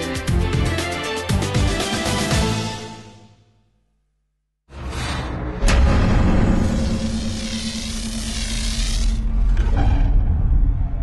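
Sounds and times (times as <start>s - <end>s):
deep rumble: 4.9s - 11.0s.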